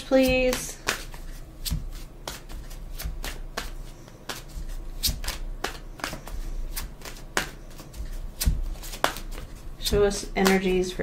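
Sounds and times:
cards rustling: 0:00.0 - 0:10.9
cards snapping: 0:00.5 - 0:09.5.

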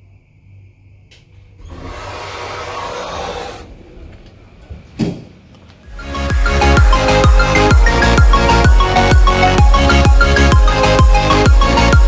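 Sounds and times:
sliding doors opening: 0:01.3 - 0:05.9.

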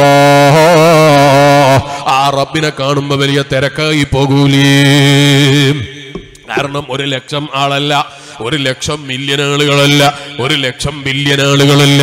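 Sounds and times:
man chanting sing-song: 0:00.0 - 0:12.0.

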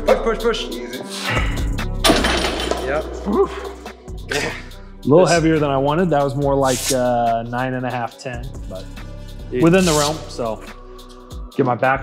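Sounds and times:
background music: 0:00.0 - 0:12.0
barbell clanking on hooks: 0:02.1 - 0:03.0.

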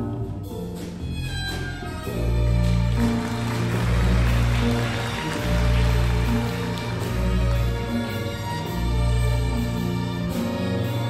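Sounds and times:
double-bass notes: 0:00.0 - 0:11.0
slow jazz ballad with strings: 0:00.0 - 0:11.0.

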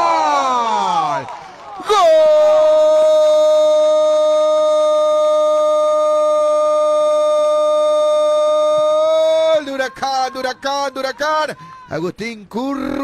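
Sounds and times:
commentator shouting goal: 0:08.6 - 0:13.0.

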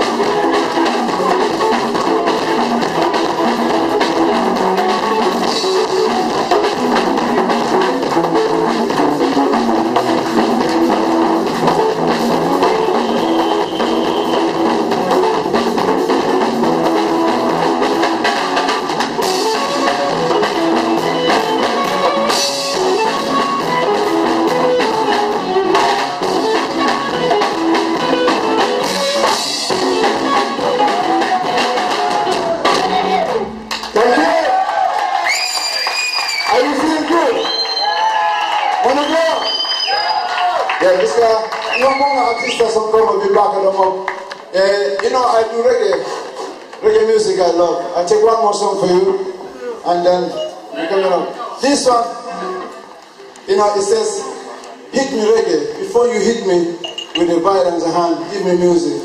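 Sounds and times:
drum kit: 0:00.0 - 0:49.3
guitar: 0:00.0 - 0:59.0
live band playing: 0:00.0 - 0:59.0.

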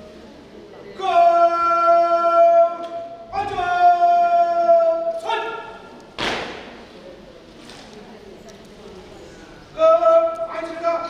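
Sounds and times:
sharp thud: 0:06.2 - 0:06.8.

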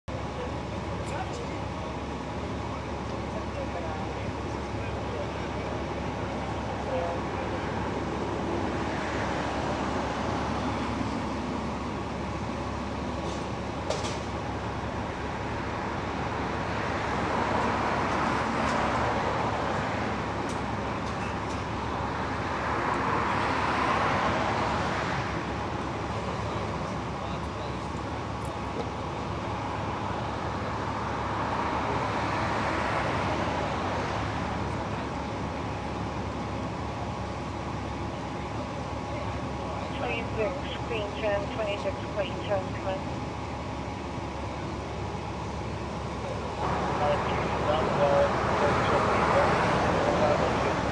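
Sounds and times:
vehicle engine and traffic noise: 0:00.0 - 0:50.9
vehicles passing by: 0:00.0 - 0:50.9
faint indistinct voices: 0:00.1 - 0:08.1, 0:33.7 - 0:43.2.

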